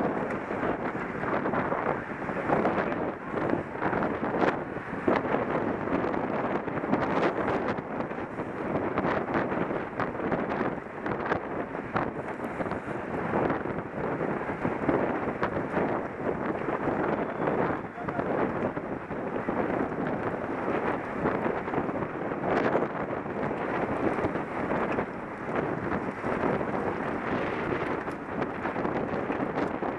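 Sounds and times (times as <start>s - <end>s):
wind buffeting microphone: 0.0s - 29.9s.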